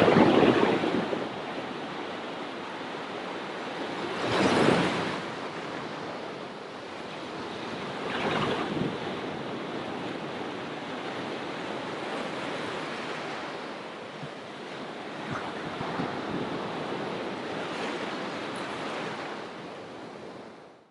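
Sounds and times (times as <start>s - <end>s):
waves washing up a sandy shore: 0.0s - 20.6s.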